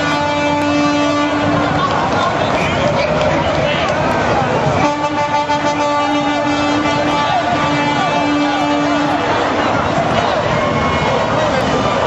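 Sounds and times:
horn blowing long note: 0:00.0 - 0:01.8, 0:04.8 - 0:09.7
street crowd noise: 0:00.0 - 0:12.0.

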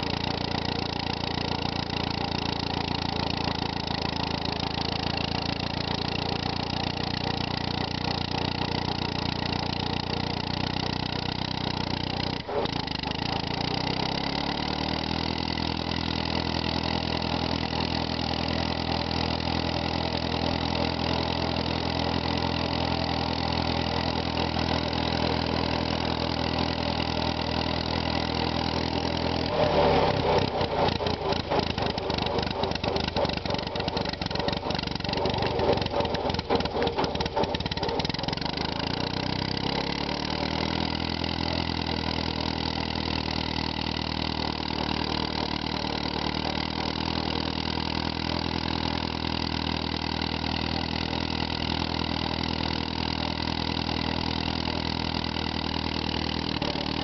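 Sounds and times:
tractor engine running: 0:00.0 - 0:57.0.

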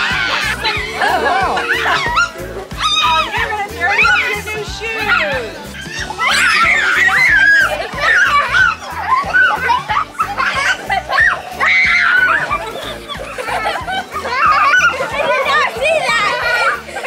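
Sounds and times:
background music with steady beat: 0:00.0 - 0:17.0
children squealing and laughing: 0:00.0 - 0:17.0.

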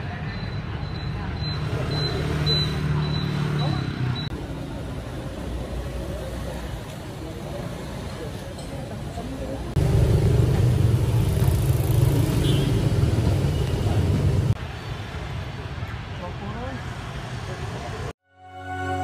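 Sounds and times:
background chatter: 0:00.0 - 0:09.8
road traffic: 0:00.0 - 0:19.0
loud low engine rumble: 0:09.7 - 0:14.6.

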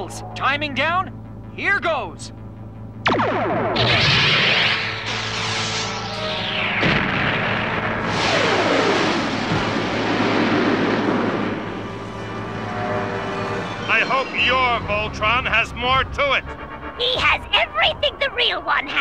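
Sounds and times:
background music: 0:00.0 - 0:19.0
rushing blasts with falling sweeps: 0:03.0 - 0:18.0.

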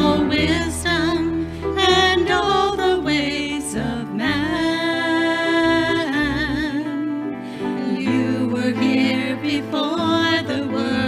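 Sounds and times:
worship band playing: 0:00.0 - 0:11.0.

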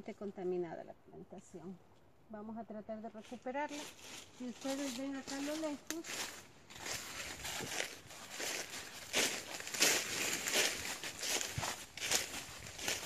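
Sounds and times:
footsteps on dry leaves: 0:03.3 - 0:13.0.

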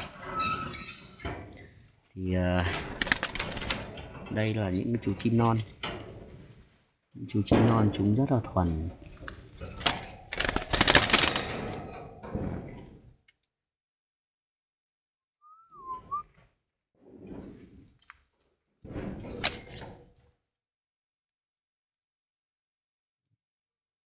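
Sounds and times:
rustling and knocking in cage: 0:02.6 - 0:06.8, 0:07.5 - 0:13.2, 0:17.1 - 0:20.2
short wavering whistle: 0:15.4 - 0:16.3.

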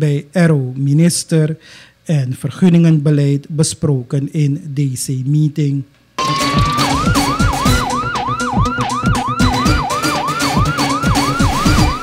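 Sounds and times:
heavy falling bass beats: 0:06.2 - 0:12.0
news jingle music: 0:06.2 - 0:12.0
siren sound effect wailing: 0:06.2 - 0:12.0.

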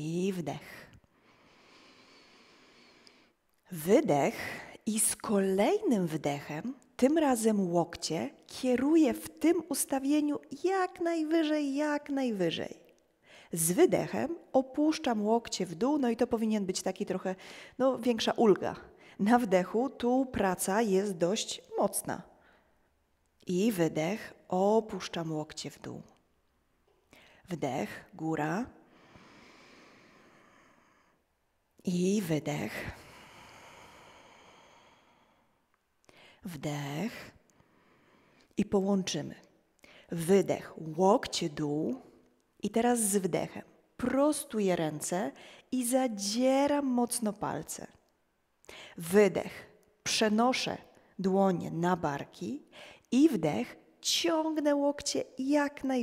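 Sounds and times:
person inhaling: 0:01.1 - 0:03.4, 0:28.9 - 0:31.2, 0:33.0 - 0:36.4, 0:48.7 - 0:49.0, 0:52.7 - 0:53.1
slow breath through nose: 0:01.1 - 0:03.4, 0:28.9 - 0:31.2.

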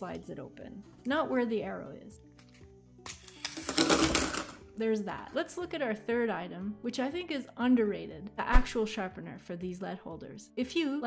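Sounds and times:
pencil leads clattering onto paper: 0:02.4 - 0:04.6.

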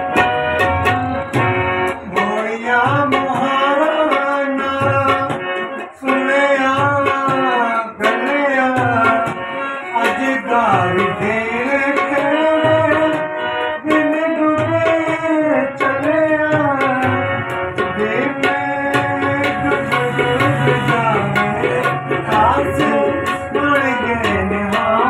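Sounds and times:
man singing folk song: 0:06.0 - 0:13.1, 0:17.9 - 0:25.0
hand-drum strokes: 0:13.8 - 0:25.0.

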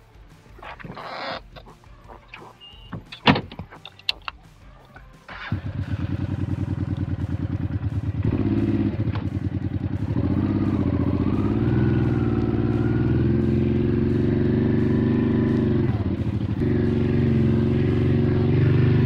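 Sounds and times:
motorcycle engine running: 0:00.0 - 0:19.0.

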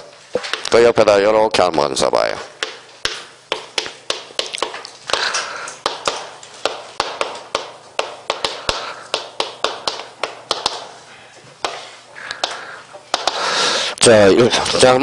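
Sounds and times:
chalk tapping on chalkboard: 0:00.3 - 0:00.9, 0:02.4 - 0:13.6.

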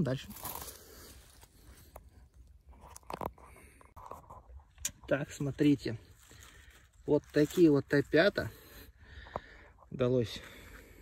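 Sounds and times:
footsteps crunching through leaves: 0:00.0 - 0:01.9, 0:06.0 - 0:08.1.

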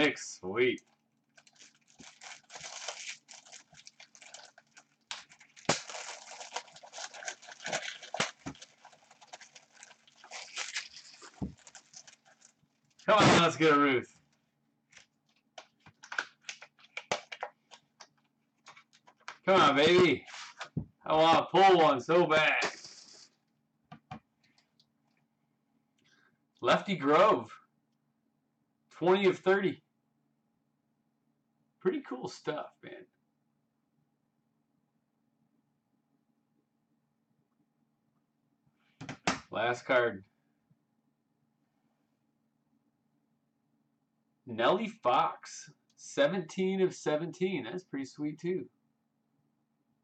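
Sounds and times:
plastic shrink-wrap tearing: 0:01.3 - 0:13.1.

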